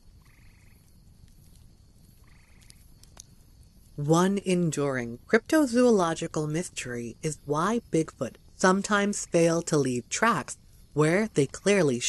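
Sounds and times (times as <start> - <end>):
faint clicks: 0.2 - 3.4.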